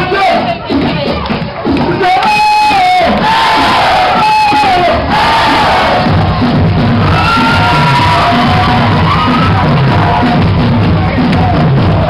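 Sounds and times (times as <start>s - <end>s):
loud dance music: 0.0s - 12.0s
crowd chanting in unison: 4.8s - 6.2s.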